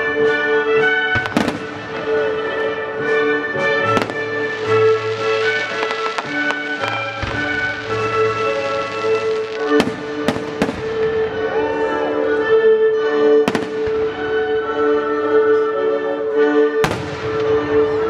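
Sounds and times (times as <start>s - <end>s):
baroque orchestra music: 0.0s - 18.0s
firework bangs: 1.1s - 2.4s, 3.8s - 11.4s, 13.5s - 14.3s, 16.8s - 18.0s.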